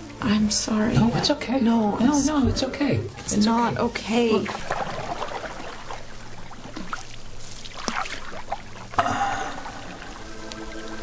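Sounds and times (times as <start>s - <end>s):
bathwater sloshing: 0.8s - 11.0s
water splash: 4.4s - 10.9s.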